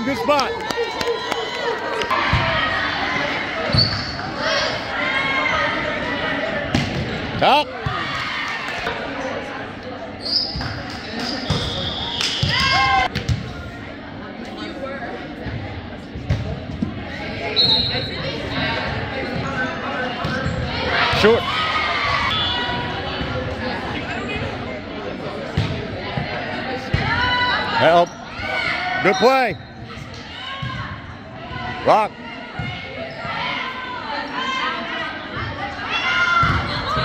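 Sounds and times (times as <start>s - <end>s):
murmur of people talking: 0.0s - 37.0s.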